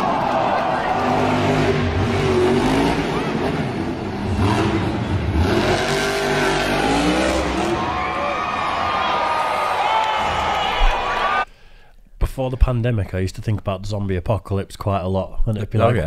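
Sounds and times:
monster truck engines revving: 0.0 - 10.6.

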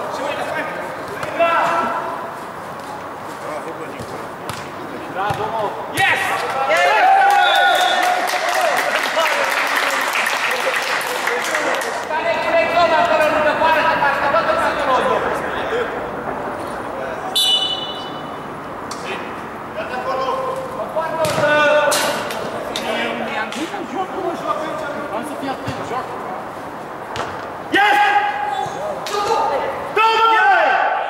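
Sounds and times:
referee's whistle blast: 17.4 - 18.2.

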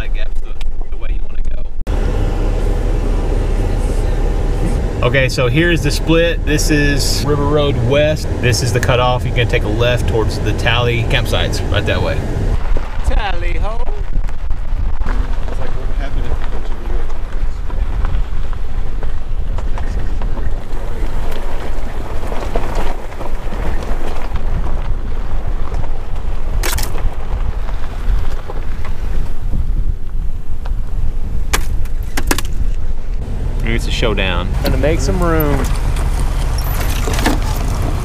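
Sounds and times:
truck engine and tyres rumbling: 0.0 - 38.0
wind noise: 2.7 - 38.0.

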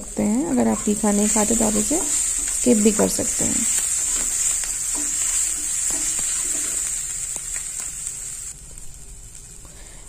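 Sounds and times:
vegetables sizzling in oil: 0.0 - 9.9
spatula scraping and tapping pan: 0.8 - 8.0.

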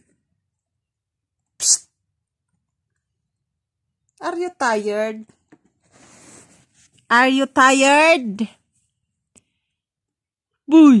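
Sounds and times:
short sharp hissing burst: 1.6 - 2.0.

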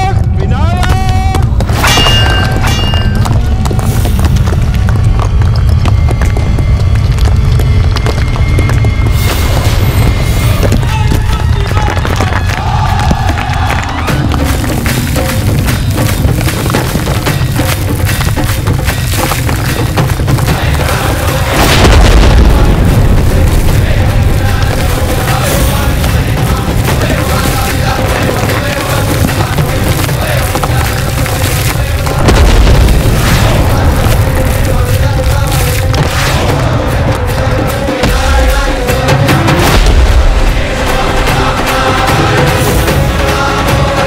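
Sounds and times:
dramatic score music: 0.0 - 44.0
heavy low rumble: 0.0 - 44.0
fast sharp percussion hits: 8.5 - 44.0
deep boom of a blast: 21.5 - 25.2, 32.2 - 34.8, 39.6 - 40.6.

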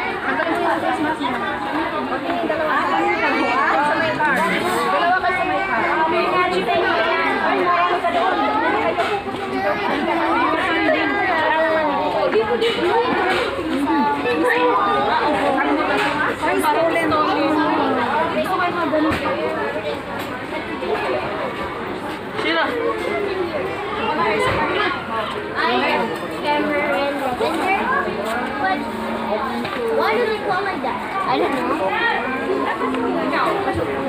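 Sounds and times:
overlapping voices and chatter: 0.0 - 34.0.

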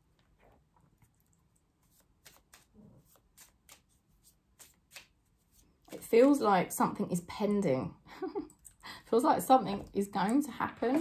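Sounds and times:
cards being shuffled: 1.8 - 6.4.

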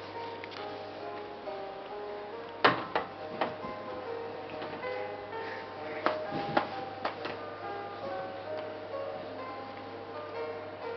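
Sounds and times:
toy playing electronic lullaby: 5.0 - 10.9.

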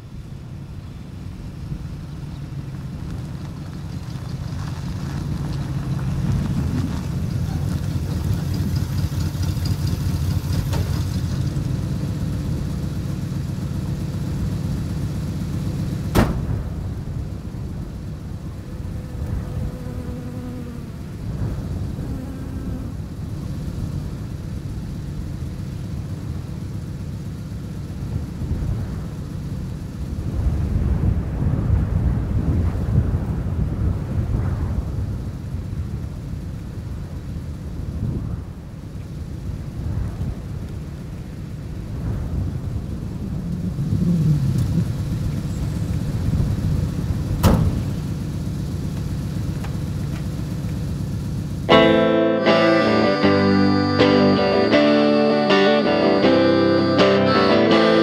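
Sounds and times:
truck engine: 0.0 - 33.2, 40.5 - 58.0
wind rumble: 0.0 - 53.2
sharp bang: 16.1 - 16.8.

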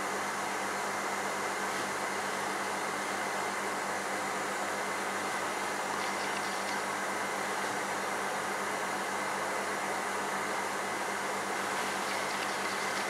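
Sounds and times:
aquarium air pump hissing: 10.7 - 13.0.

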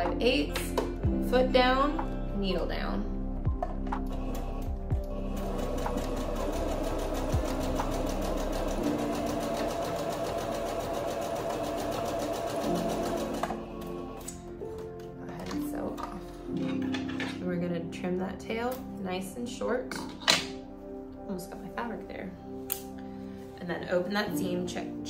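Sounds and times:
background music: 0.0 - 25.0
sewing machine stitching: 5.2 - 13.6.

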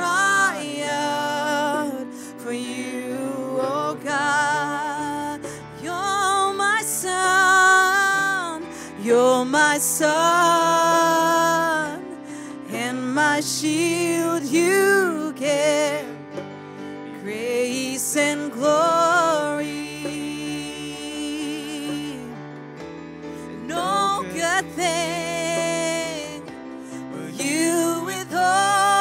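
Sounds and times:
woman singing with vibrato: 0.0 - 16.2, 17.2 - 22.4, 23.5 - 29.0
electric keyboard chords: 0.0 - 29.0.

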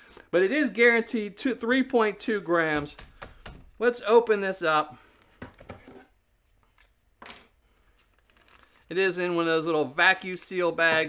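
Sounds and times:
soft plastic bag handling: 7.8 - 8.9.

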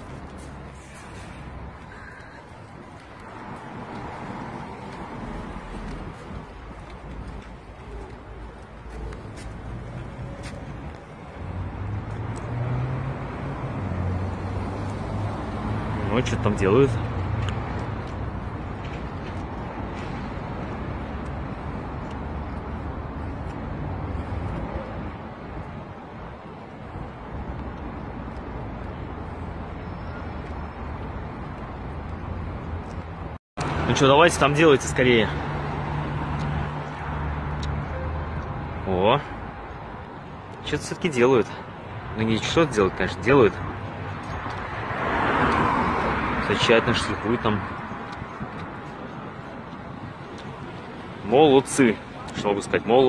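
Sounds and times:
street noise: 0.0 - 53.0.

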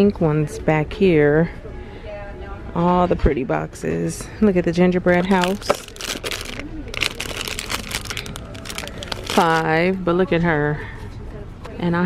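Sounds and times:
cellophane wrapping crinkling: 5.2 - 9.8.

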